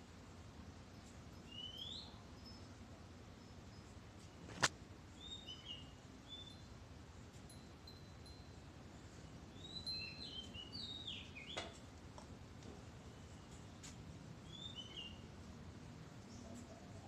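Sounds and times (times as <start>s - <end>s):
faint background noise: 0.0s - 17.0s
small birds chirping: 1.0s - 6.8s, 7.5s - 17.0s
sharp click: 4.5s - 4.8s.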